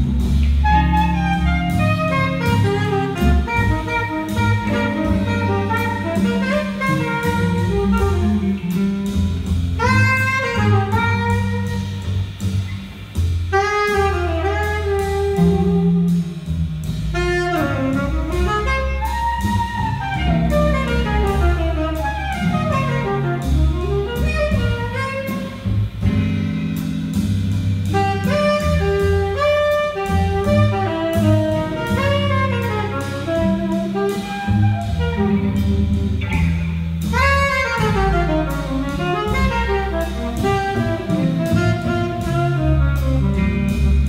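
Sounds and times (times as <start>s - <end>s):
drums: 0.0s - 44.0s
upright bass: 0.0s - 44.0s
saxophone melody: 0.4s - 12.6s, 13.5s - 26.5s, 27.7s - 44.0s
electric guitar: 28.0s - 44.0s.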